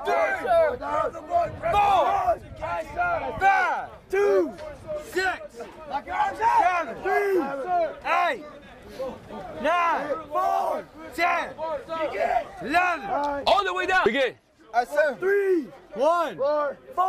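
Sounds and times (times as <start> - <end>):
men shouting: 0.0 - 14.1.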